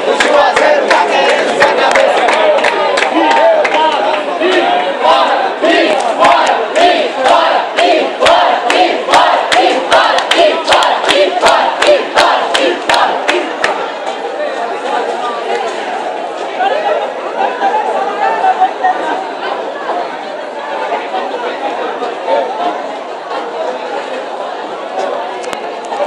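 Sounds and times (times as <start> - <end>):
crowd chatter: 0.0 - 26.0
crowd shouting and jeering: 0.0 - 26.0.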